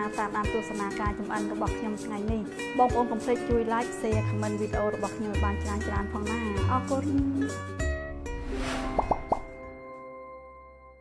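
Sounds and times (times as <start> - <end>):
bubbly pops rising in pitch: 9.0 - 9.5.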